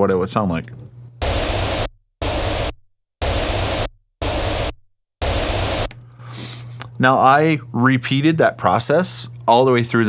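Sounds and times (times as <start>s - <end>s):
pink noise bursts: 1.2s - 5.9s.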